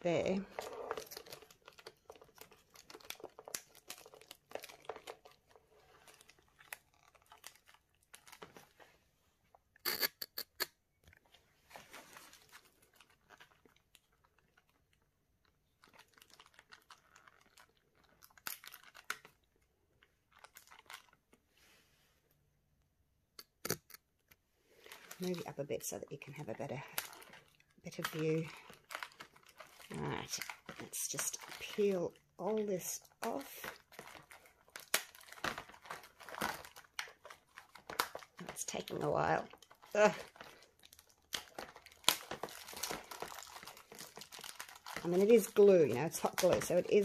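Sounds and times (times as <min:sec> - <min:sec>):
plastic film crinkling and tearing: 0:00.2 - 0:08.9, 0:11.7 - 0:21.4, 0:24.7 - 0:47.0.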